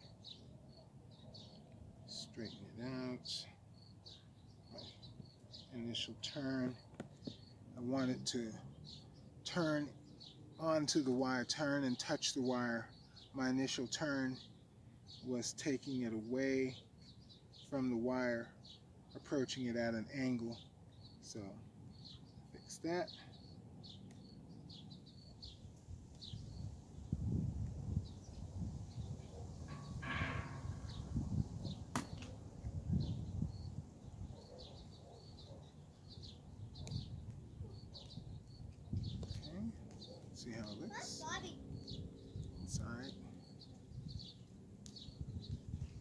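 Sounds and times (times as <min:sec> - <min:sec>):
small birds chirping: 0:00.0 - 0:46.0
low wind rumble: 0:25.5 - 0:34.4.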